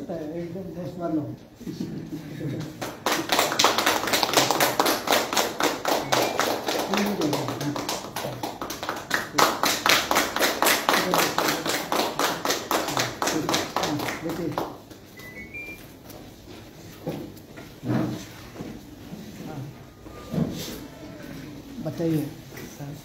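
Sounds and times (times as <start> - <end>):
group of people clapping: 2.6 - 15.9.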